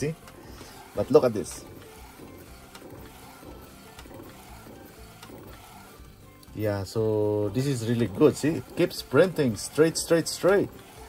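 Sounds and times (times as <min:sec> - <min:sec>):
printer mechanical whirr: 0:00.0 - 0:11.0.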